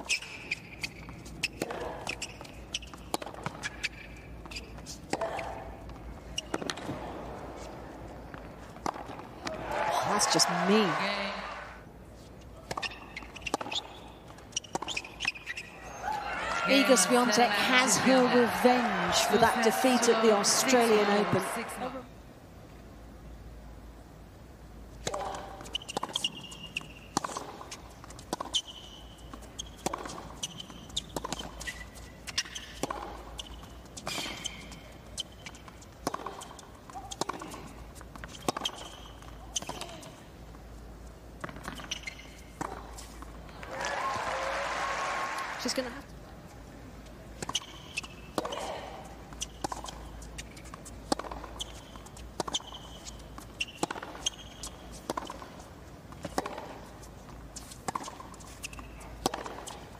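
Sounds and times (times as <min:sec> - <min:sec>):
shoe squeaks: 0:00.0 - 0:05.5, 0:06.2 - 0:06.8, 0:12.7 - 0:16.0, 0:25.6 - 0:40.2, 0:41.4 - 0:43.2, 0:47.4 - 0:55.6, 0:56.2 - 0:59.9
ball bouncing: 0:00.8 - 0:07.0, 0:08.3 - 0:09.6, 0:25.0 - 0:40.0, 0:41.4 - 0:43.1, 0:49.4 - 0:55.6, 0:56.2 - 0:56.8, 0:57.8 - 0:59.8
racket striking ball: 0:08.3 - 0:09.8, 0:25.0 - 0:27.6, 0:32.4 - 0:33.2, 0:36.0 - 0:37.6, 0:49.5 - 0:51.8, 0:53.7 - 0:55.5, 0:56.2 - 0:56.8, 0:57.8 - 0:59.8
crowd applause and cheering: 0:09.5 - 0:11.8, 0:16.0 - 0:22.0, 0:43.5 - 0:45.9.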